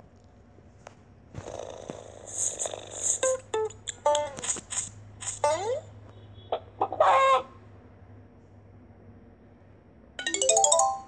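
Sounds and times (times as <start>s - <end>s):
rising chime jingle: 10.2s - 11.0s.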